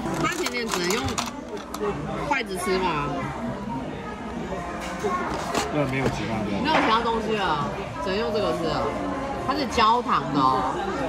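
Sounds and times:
people talking in a restaurant: 0.0s - 11.0s.

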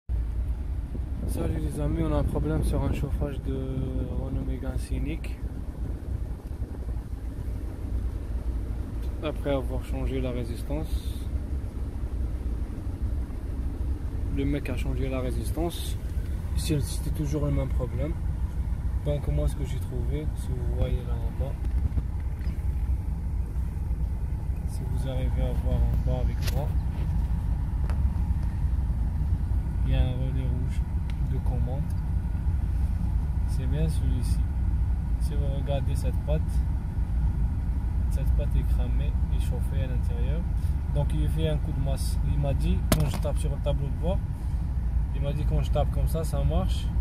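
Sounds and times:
car engine low rumble: 0.0s - 47.0s.

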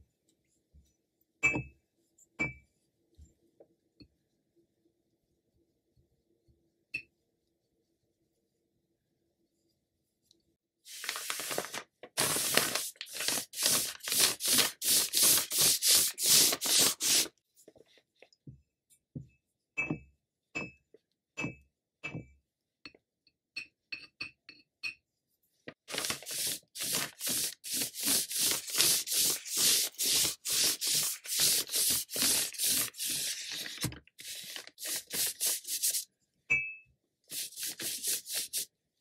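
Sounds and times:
brush swishing on paper: 10.9s - 17.3s, 25.8s - 36.1s, 37.3s - 38.7s.

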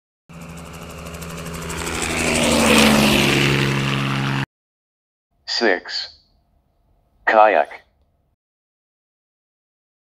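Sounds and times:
propeller aircraft flying past: 0.3s - 4.5s.

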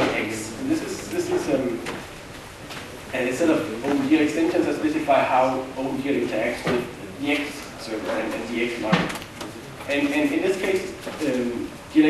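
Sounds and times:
man speaking: 0.0s - 2.0s, 3.1s - 12.0s.

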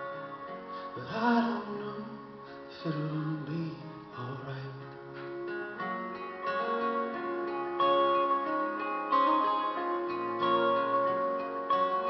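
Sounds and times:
acoustic guitar picking: 0.0s - 12.0s.

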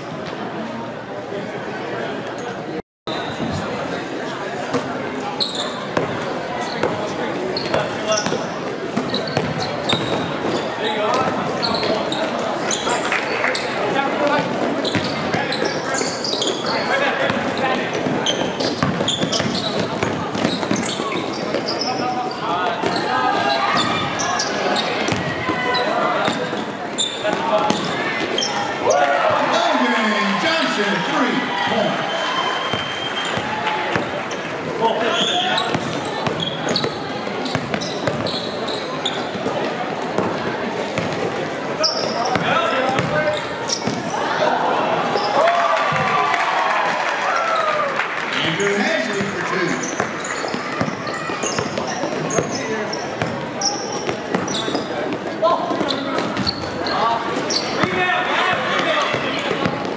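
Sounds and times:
voices echoing in hall: 0.0s - 59.9s
basketball bouncing on court: 7.6s - 10.6s, 14.8s - 15.4s, 17.3s - 21.7s, 25.0s - 25.6s, 35.2s - 38.5s, 41.0s - 41.4s, 42.0s - 44.1s, 49.2s - 52.6s, 53.2s - 56.7s, 57.5s - 59.9s.

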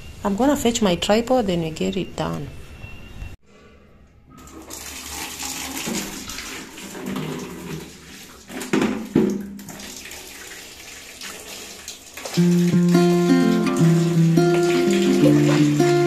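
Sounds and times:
tap water filling plastic bucket: 4.4s - 16.0s.

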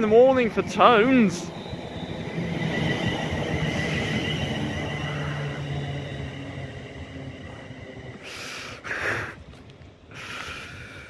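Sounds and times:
train traction motor whine: 0.0s - 11.0s
train wheels rumbling: 0.0s - 11.0s.

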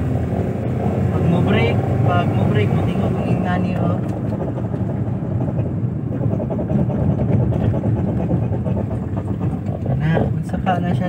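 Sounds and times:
van cabin rumble: 0.0s - 11.0s.

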